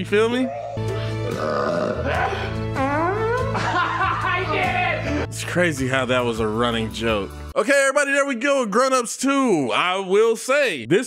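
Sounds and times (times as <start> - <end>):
film soundtrack music: 0.0 - 7.6.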